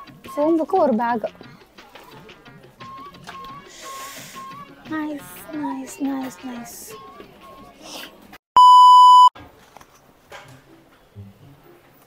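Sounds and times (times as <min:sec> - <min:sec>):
quiet background music: 0:00.0 - 0:08.4, 0:09.4 - 0:12.0.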